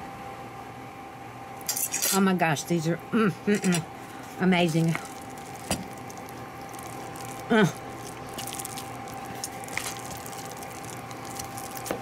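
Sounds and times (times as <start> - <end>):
wooden spoon stirring mashed potatoes: 4.3 - 12.0.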